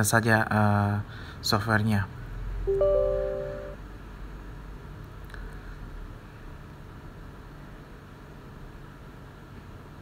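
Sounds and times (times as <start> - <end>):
computer system chime: 2.7 - 3.8.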